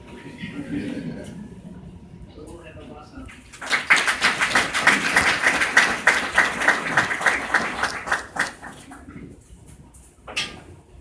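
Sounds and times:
crowd applauding: 3.4s - 9.2s.

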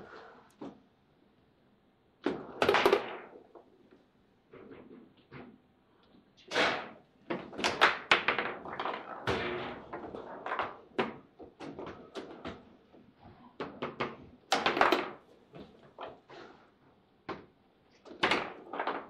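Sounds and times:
table football ball knocks and clacks: 2.2s - 3.7s, 6.7s - 16.2s, 17.2s - 19.0s.

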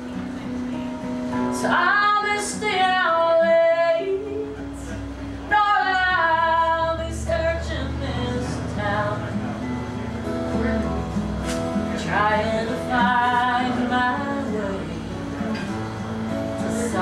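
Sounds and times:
strummed acoustic guitar: 0.0s - 17.0s
woman singing: 1.5s - 9.5s, 10.5s - 11.2s, 11.8s - 15.8s, 16.4s - 17.0s.

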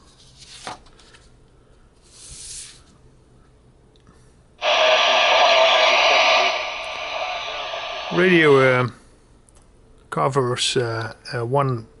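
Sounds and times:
paper pages rustling: 0.1s - 1.3s
radio static: 4.6s - 8.8s.

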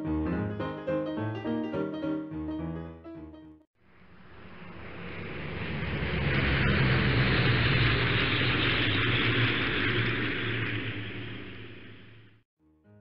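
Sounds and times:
airplane engine and propeller: 3.8s - 12.4s.

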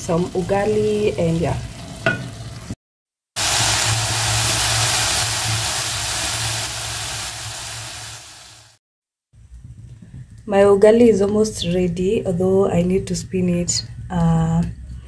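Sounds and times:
greens sizzling in hot oil: 3.4s - 8.8s.

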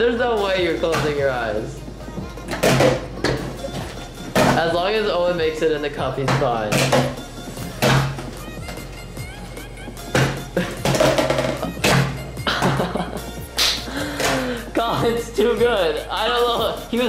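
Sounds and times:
background music with a beat: 0.0s - 17.0s.

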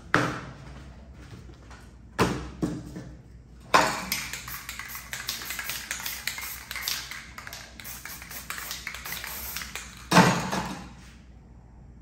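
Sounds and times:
spray can ball rattling: 3.8s - 10.8s
spray can hissing: 3.9s - 10.1s.

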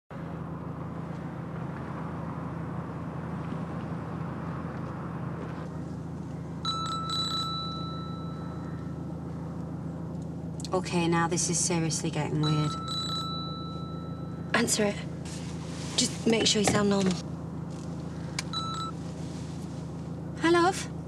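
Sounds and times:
steady low hum: 0.1s - 21.0s
mobile phone ringing: 6.6s - 8.6s, 12.6s - 14.5s, 18.5s - 19.0s.

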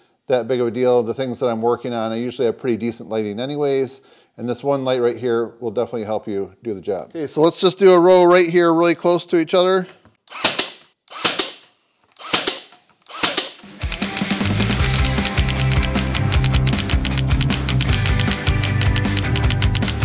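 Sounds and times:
brad nailer firing: 10.2s - 20.0s
music with steady beat: 13.6s - 20.0s.

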